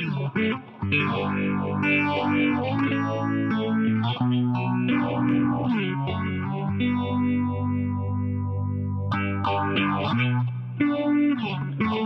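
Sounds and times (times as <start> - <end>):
electric guitar chords with phaser: 0.0 - 12.0.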